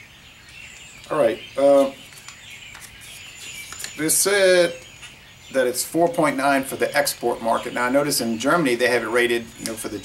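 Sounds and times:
faint birds chirping: 0:00.0 - 0:10.0
low outdoor noise: 0:00.0 - 0:10.0.

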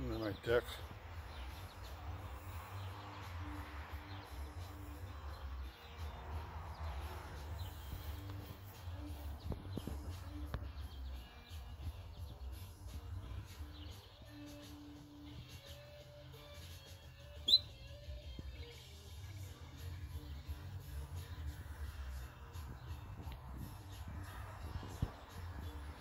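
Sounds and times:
groundhog shrill rising chirp: 0:17.4 - 0:17.8.

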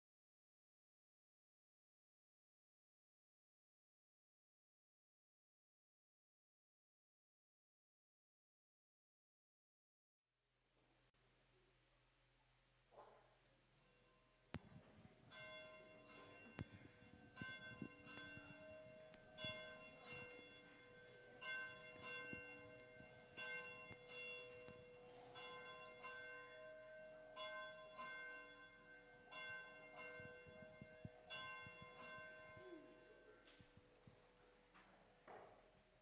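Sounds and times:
church bell chiming: 0:13.8 - 0:35.9.

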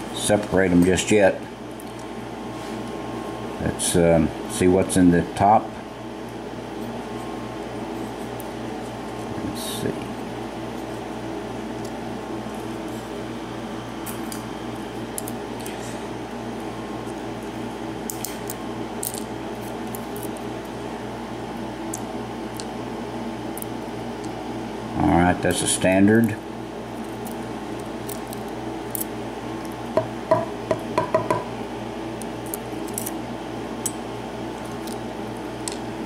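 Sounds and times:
air conditioner hum: 0:00.0 - 0:36.0.

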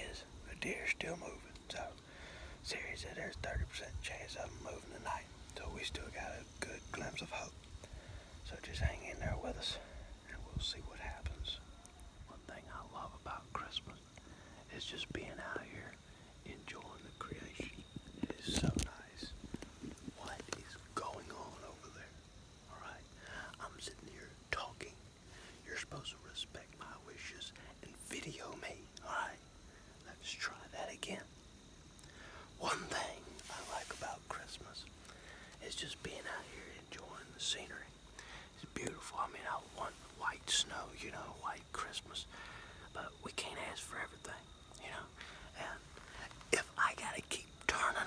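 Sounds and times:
man whispering: 0:00.0 - 0:31.4, 0:32.1 - 0:48.0.

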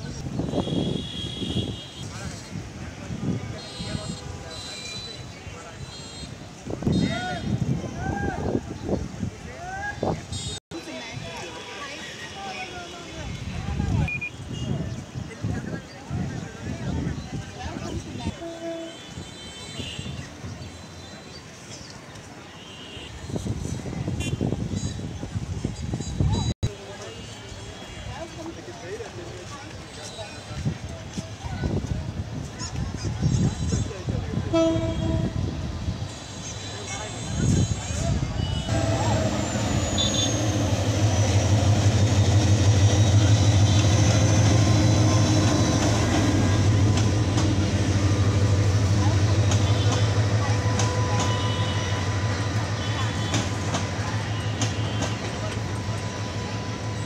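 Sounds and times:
train coaches rolling past: 0:23.1 - 0:57.0
diesel locomotive engine drone: 0:34.4 - 0:57.0
distant voices: 0:35.6 - 0:57.0.

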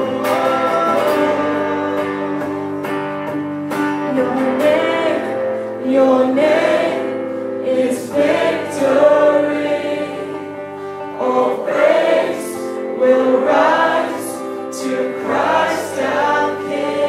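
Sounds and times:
electric guitar: 0:00.0 - 0:17.0
woman singing into a microphone: 0:03.9 - 0:17.0.

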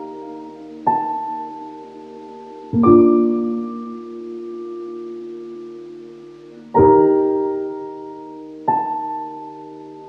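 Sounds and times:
soft keyboard chord: 0:00.0 - 0:10.0.

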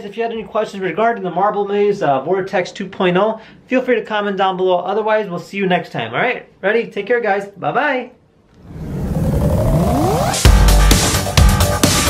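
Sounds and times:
tones gliding upward: 0:08.5 - 0:10.7
electronic riser swell: 0:08.5 - 0:11.3
electronic music: 0:08.6 - 0:12.0.

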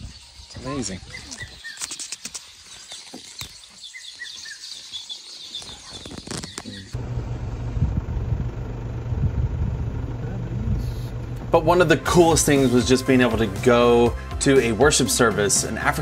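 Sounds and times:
small birds chirping: 0:00.0 - 0:07.0
vehicle engine idling: 0:07.0 - 0:12.8.

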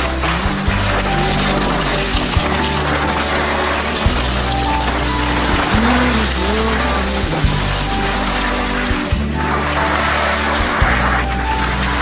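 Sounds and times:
instrumental music with held notes: 0:00.0 - 0:12.0
steady bass: 0:00.0 - 0:12.0.

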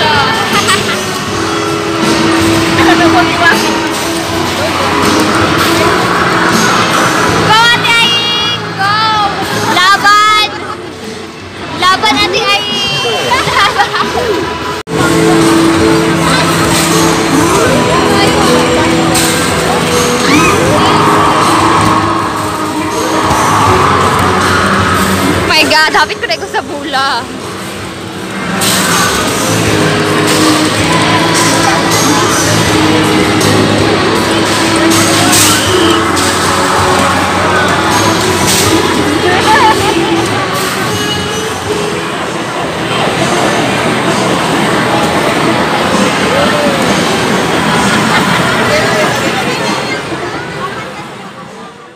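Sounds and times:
crowd noise: 0:00.0 - 0:51.9
rising electronic tone: 0:14.9 - 0:25.6.

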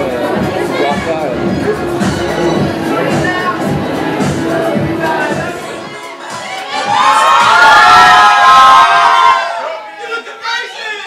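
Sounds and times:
crowd screaming and cheering: 0:00.0 - 0:11.0.

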